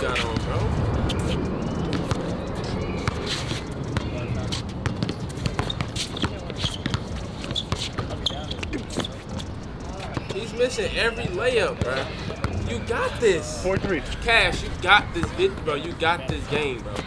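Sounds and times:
faint voices: 0.0s - 17.0s
basketball bouncing on hard court: 4.8s - 9.1s, 13.7s - 13.9s, 15.2s - 15.6s.

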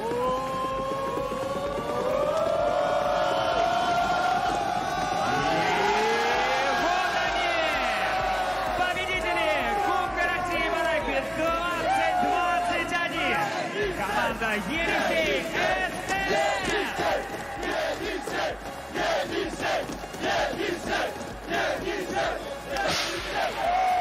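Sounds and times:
men shouting and yelling: 2.5s - 24.0s.

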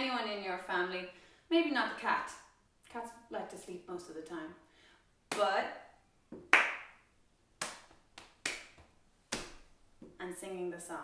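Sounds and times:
hand claps: 6.4s - 7.0s, 7.6s - 9.7s.

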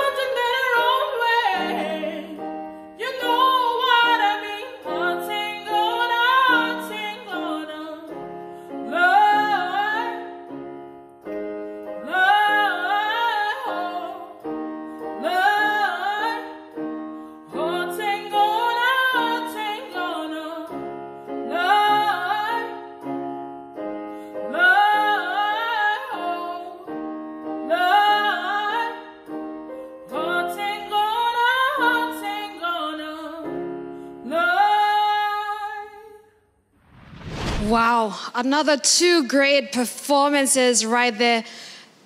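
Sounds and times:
woman singing: 0.0s - 10.4s, 12.0s - 14.4s, 15.1s - 16.8s, 17.5s - 23.1s, 24.3s - 29.1s, 30.1s - 36.3s, 37.6s - 41.7s
singer breathing: 41.4s - 42.0s.

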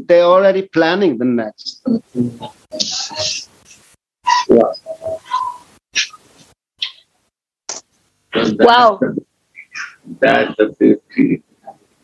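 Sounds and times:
person speaking over video call: 0.0s - 7.0s, 7.7s - 12.0s.

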